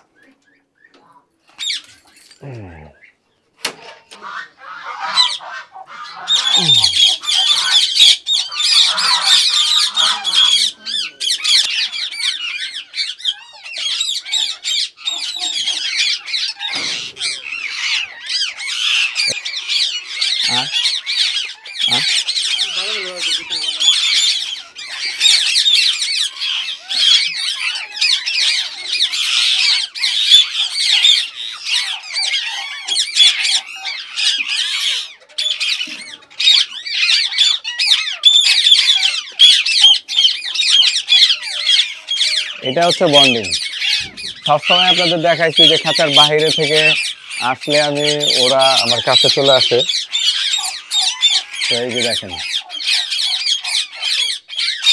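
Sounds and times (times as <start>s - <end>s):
parakeets squawking and screeching: 0.0s - 54.9s.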